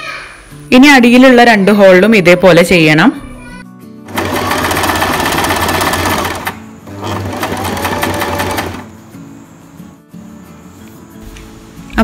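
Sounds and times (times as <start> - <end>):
electric sewing machine running: 4.1 - 8.9.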